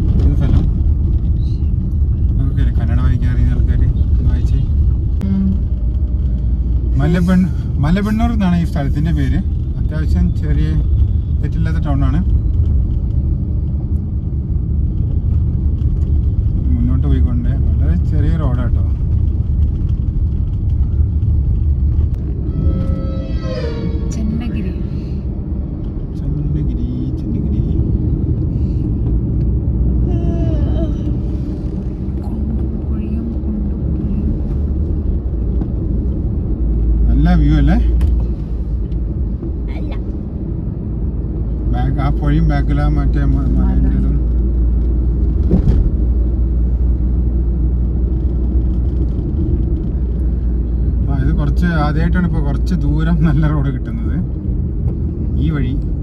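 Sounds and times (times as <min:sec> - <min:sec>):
car road and engine rumble: 0:00.0 - 0:56.0.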